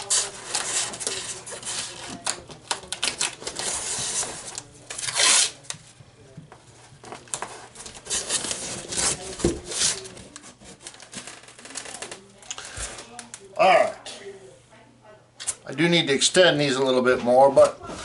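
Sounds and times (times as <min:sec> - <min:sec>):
tape ripping off roll: 0:05.0 - 0:05.6
taps and crinkles: 0:05.6 - 0:13.5.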